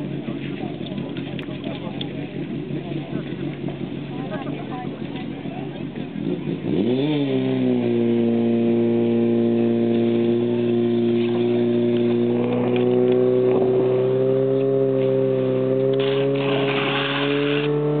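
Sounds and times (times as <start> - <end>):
pump engine running at high revs: 0.0 - 18.0.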